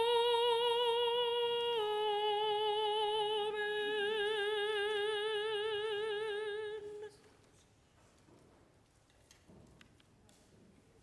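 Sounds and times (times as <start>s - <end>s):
woman singing with vibrato: 0.0s - 7.3s.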